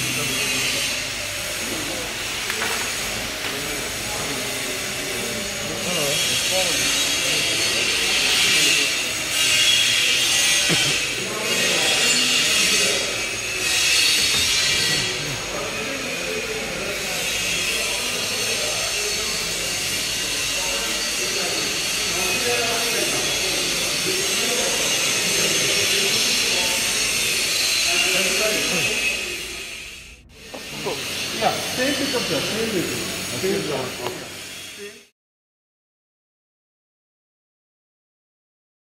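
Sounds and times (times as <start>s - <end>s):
indistinct voices: 0.0s - 35.1s
steady workshop hiss: 0.0s - 35.1s.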